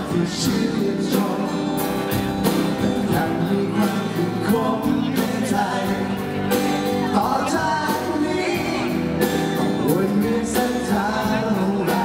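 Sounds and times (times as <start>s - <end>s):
man singing through a pa: 0.0s - 2.1s, 2.7s - 6.4s, 7.0s - 12.0s
acoustic guitar: 0.0s - 12.0s
drums keeping a steady beat: 0.0s - 12.0s.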